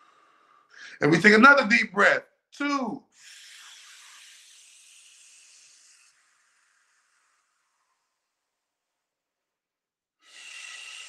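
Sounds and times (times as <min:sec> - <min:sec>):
man blowing out breath: 0:00.0 - 0:01.0.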